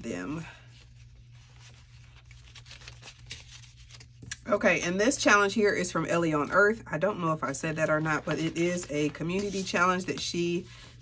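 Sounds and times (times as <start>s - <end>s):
paper banknotes rustling: 0.7s - 4.2s, 7.5s - 11.0s.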